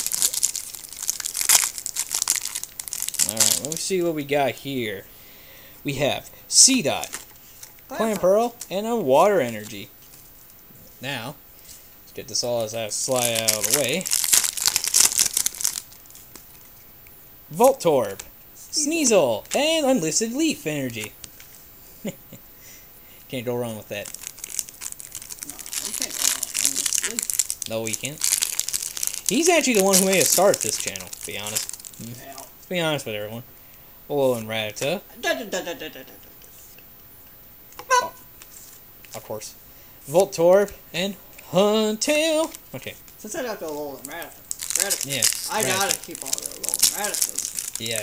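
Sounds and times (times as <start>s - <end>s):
foil wrapper crinkling: 0.0s - 4.0s, 13.0s - 16.6s, 23.9s - 32.2s, 42.0s - 48.0s.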